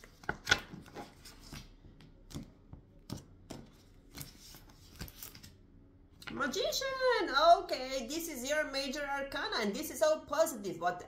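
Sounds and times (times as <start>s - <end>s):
cards being shuffled: 0.0s - 5.6s.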